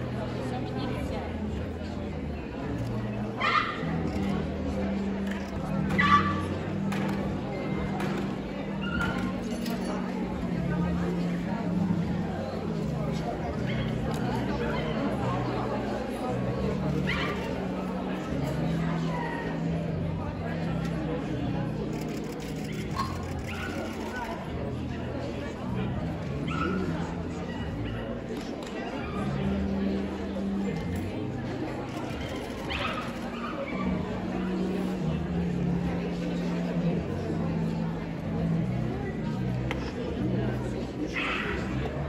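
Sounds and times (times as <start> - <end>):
murmur of crowd: 0.0 - 42.0
people talking: 0.0 - 42.0.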